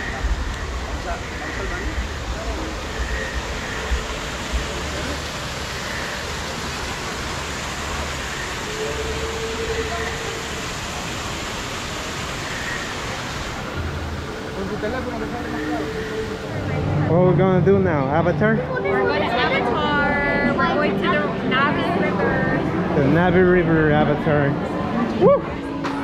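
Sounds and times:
waterfall rushing: 0.0s - 25.8s
faint voices: 0.0s - 26.0s.

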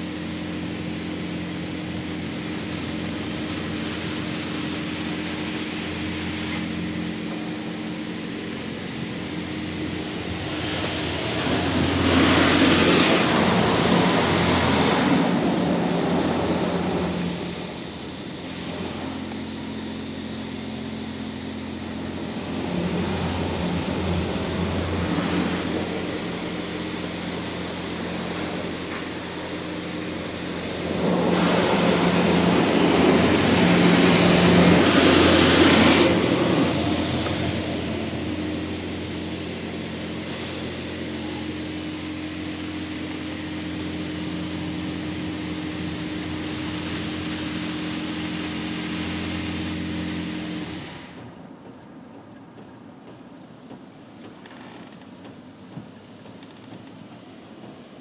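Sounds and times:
water spray hissing on car: 0.0s - 51.4s
machine hum: 0.0s - 58.0s.

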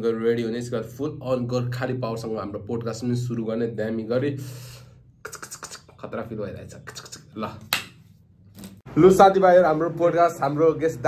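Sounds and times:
man speaking: 5.3s - 7.7s, 8.9s - 11.0s.

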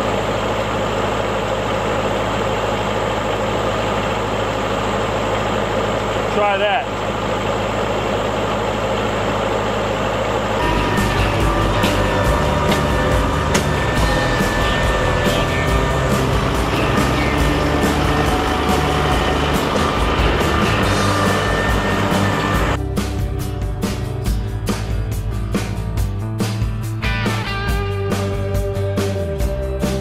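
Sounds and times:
tractor diesel engine running: 0.0s - 30.0s
background music: 10.6s - 30.0s.

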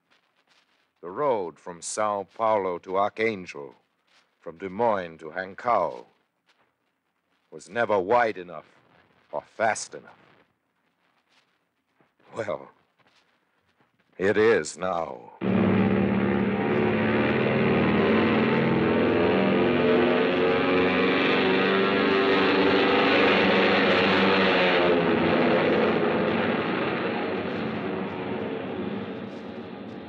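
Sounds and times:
airplane engine: 15.4s - 30.0s.

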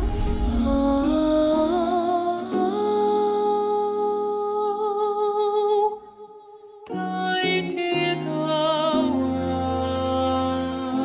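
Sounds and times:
man singing high note: 0.3s - 5.9s, 6.9s - 11.0s.

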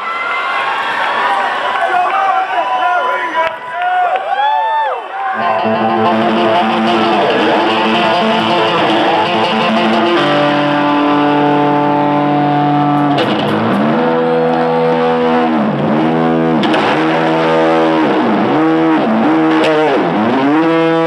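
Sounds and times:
distorted electric guitar solo: 5.4s - 21.0s.

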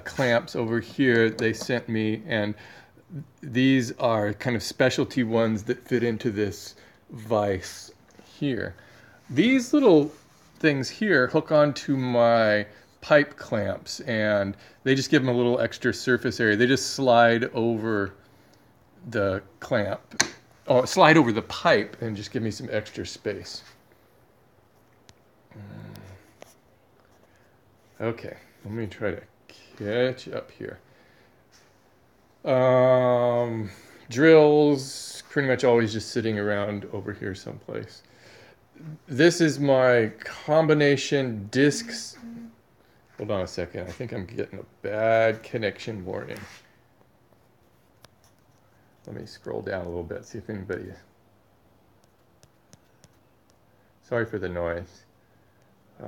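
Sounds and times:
person murmuring hmm: 25.5s - 26.3s.

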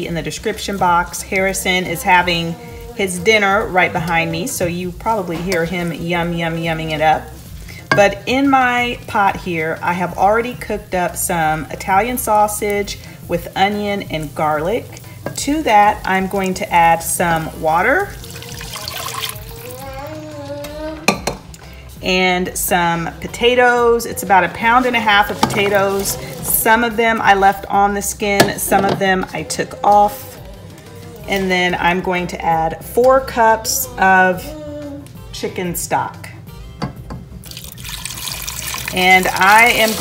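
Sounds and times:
water pouring into pot: 16.1s - 19.8s, 37.4s - 40.0s
child humming: 18.2s - 21.2s, 29.4s - 31.3s, 33.8s - 35.3s.

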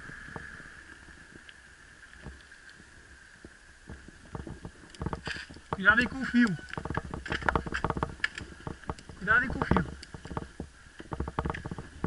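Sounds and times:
mountain bike rattling: 4.2s - 12.0s.

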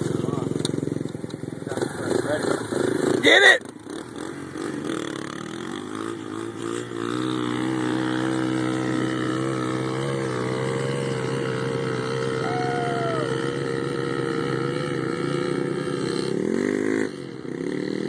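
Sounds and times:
small dirt bike engine: 0.0s - 18.0s.

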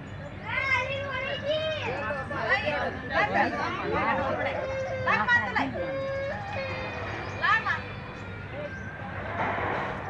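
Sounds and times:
people talking: 0.5s - 8.8s.

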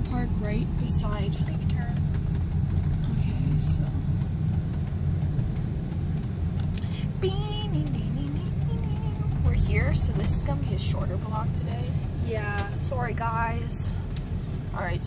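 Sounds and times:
car interior rumble: 0.0s - 15.0s.

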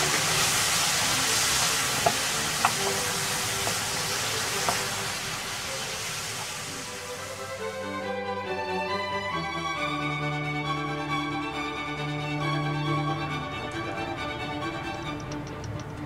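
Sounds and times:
vegetables sizzling in oil: 0.0s - 8.0s
background music: 0.0s - 16.0s
spatula clicking against pan: 15.1s - 16.0s.

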